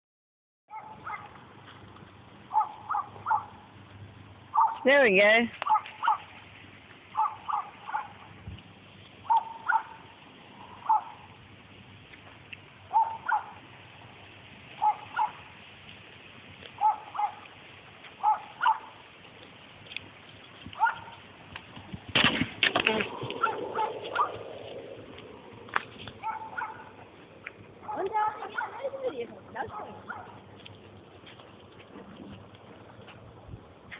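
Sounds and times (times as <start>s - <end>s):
bird calling: 9.2s - 10.0s, 12.9s - 13.6s, 22.9s - 27.0s.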